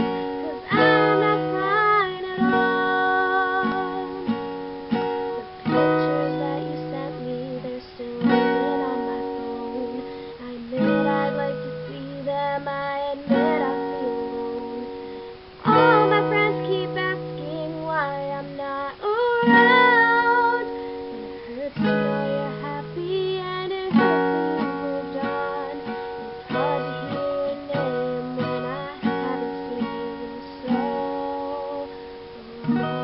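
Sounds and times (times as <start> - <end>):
strummed acoustic guitar: 0.0 - 33.0
woman singing: 0.0 - 33.0.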